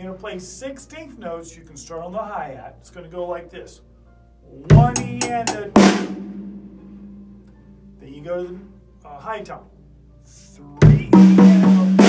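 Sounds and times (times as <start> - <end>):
low drum tone ringing: 4.7 - 8.8, 10.8 - 12.0.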